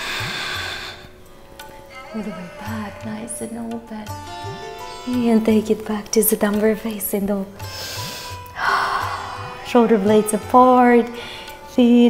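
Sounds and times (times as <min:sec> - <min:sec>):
soft background music: 0:00.0 - 0:12.0
person breathing out: 0:07.7 - 0:09.6.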